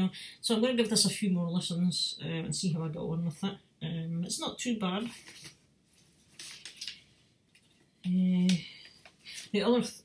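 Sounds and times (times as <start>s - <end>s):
vinyl record sleeve rustling: 5.0s - 9.9s.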